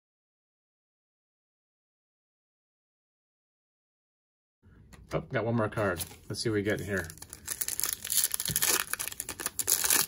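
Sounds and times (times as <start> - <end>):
foil wrapper tearing and crinkling: 6.6 - 10.0.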